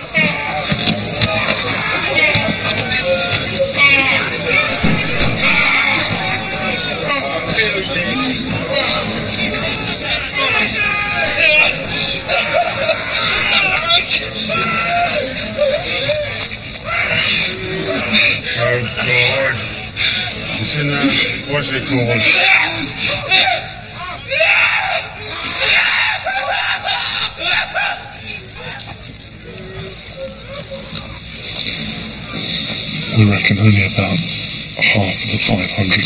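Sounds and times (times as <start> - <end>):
people screaming in pain: 0.0 - 31.3
agitated voices: 0.0 - 36.0.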